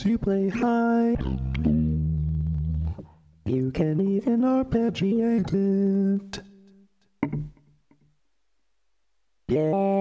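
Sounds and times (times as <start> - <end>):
pitch-corrected male singing voice: 0.0 - 6.9, 9.4 - 10.0.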